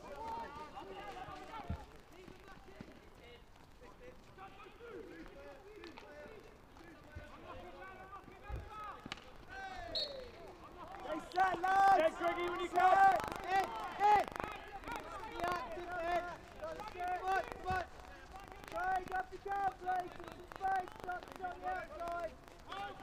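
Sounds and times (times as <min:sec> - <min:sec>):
players shouting calls: 0:00.0 - 0:03.0, 0:04.0 - 0:23.0.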